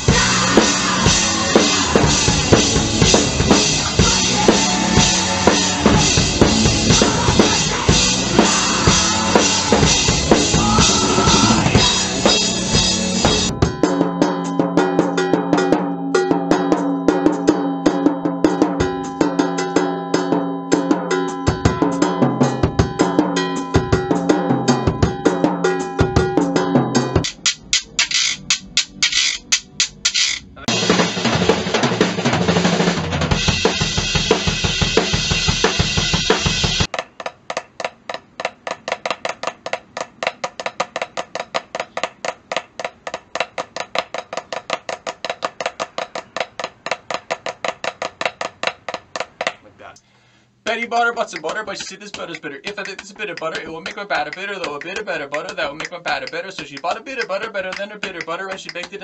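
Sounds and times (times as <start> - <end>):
drum kit playing: 0.0 - 49.7, 51.2 - 59.0
wooden hand percussion strokes: 26.6 - 30.8, 35.7 - 49.7, 51.3 - 59.0
drumsticks tapping practice pad: 27.2 - 30.6, 36.8 - 50.0, 51.0 - 59.0.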